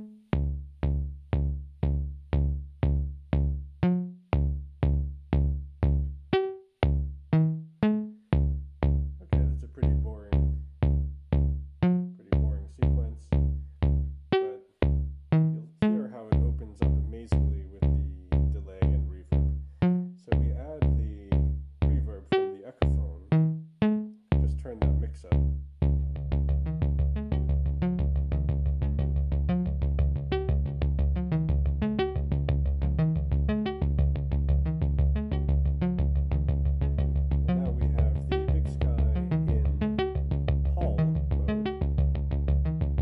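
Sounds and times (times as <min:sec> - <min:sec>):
heavy bass: 0:00.0 - 0:43.0
synthesizer plucked notes: 0:00.0 - 0:43.0.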